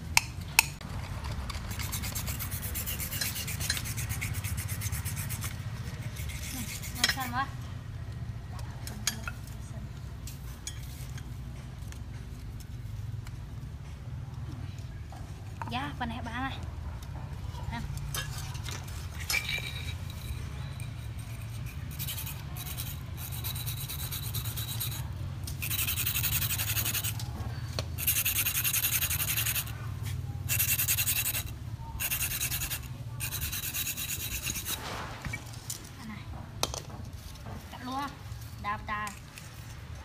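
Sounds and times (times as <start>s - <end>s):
knife rasping on whetstone: 1.6s - 7.4s, 19.6s - 27.3s, 28.0s - 35.1s.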